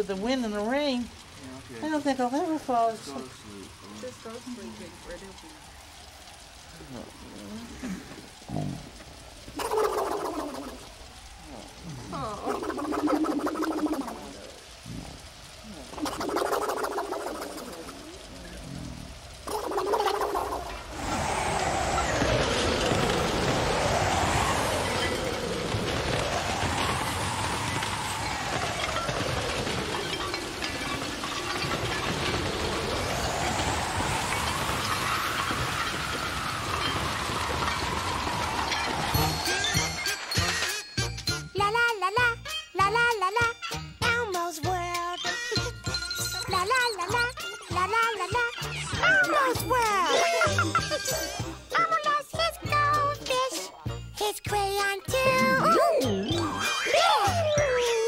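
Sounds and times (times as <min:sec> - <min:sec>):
wind howling: 0:00.0 - 0:41.9, 0:45.6 - 0:58.0
heavy rain hiss: 0:00.0 - 0:58.0
wordless vocal sounds: 0:51.8 - 0:58.0.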